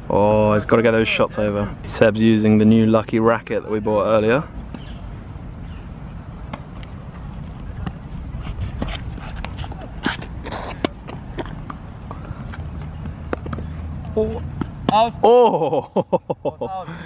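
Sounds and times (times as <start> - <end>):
tennis ball bouncing: 6.4 - 15.3
racket striking tennis ball: 8.6 - 11.8, 12.4 - 13.7.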